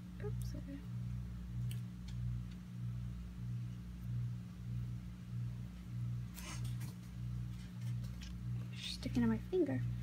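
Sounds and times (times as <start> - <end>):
washing machine humming: 0.0 - 10.0.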